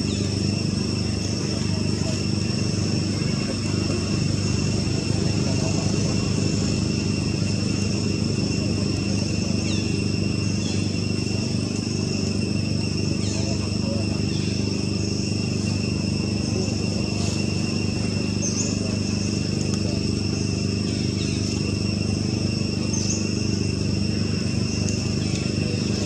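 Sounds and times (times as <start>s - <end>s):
continuous low hum: 0.0s - 26.0s
insects droning: 0.0s - 26.0s.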